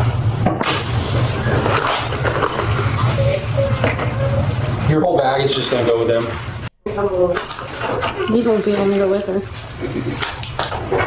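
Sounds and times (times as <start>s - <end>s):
items rustling and knocking: 0.4s - 4.8s, 6.2s - 11.0s.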